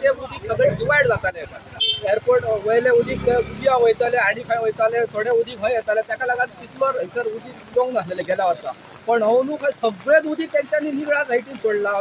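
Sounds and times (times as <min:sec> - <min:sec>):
man talking: 0:00.0 - 0:12.0.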